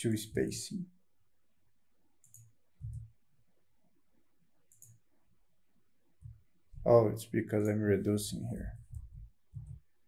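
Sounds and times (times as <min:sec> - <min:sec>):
keyboard and mouse clicks: 0:02.2 - 0:03.2, 0:04.7 - 0:05.1, 0:08.7 - 0:09.9.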